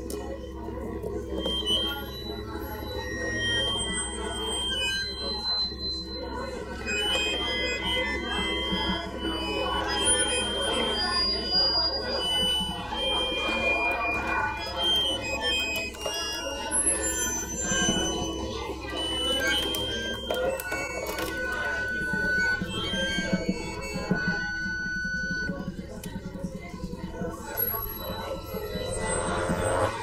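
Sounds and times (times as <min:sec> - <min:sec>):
short high held tones: 0:01.2 - 0:30.0.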